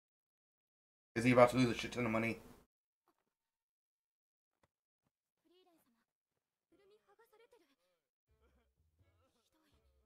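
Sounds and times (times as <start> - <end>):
faint cartoon character voice: 5.4 - 6.1, 6.7 - 10.0.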